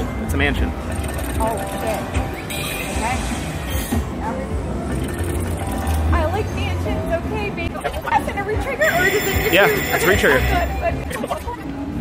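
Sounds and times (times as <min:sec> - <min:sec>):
slot machine bonus music: 0:00.0 - 0:03.9, 0:04.8 - 0:06.2, 0:08.8 - 0:11.0
low casino hum: 0:00.0 - 0:11.1
short electronic tones: 0:08.8 - 0:10.8.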